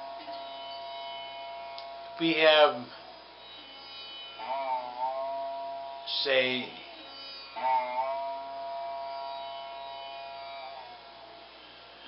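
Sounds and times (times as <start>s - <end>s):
sitar note: 0.0s - 12.0s.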